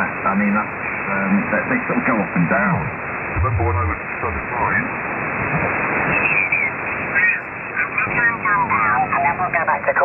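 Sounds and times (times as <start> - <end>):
radio static hiss: 0.0 - 10.0.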